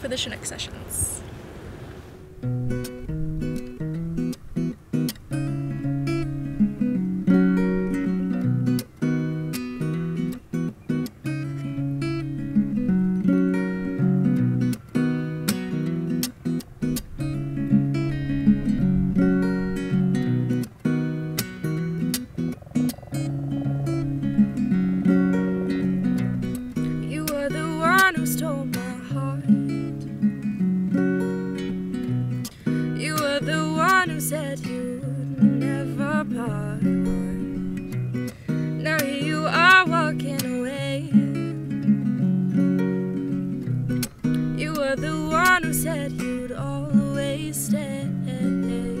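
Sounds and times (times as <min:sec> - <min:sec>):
acoustic guitar playing: 0:00.0 - 0:49.0.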